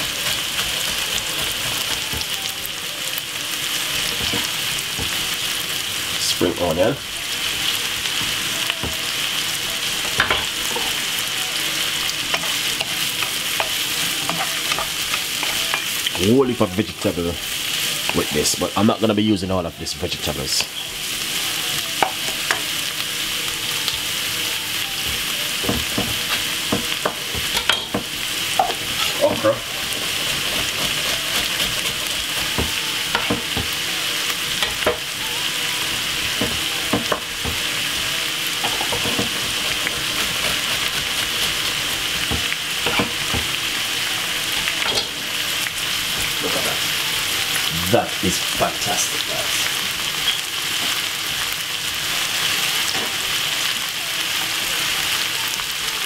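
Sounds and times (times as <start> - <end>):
vegetables sizzling in a wok: 0.0 - 56.0
wooden spoon scraping a pan: 28.5 - 33.8.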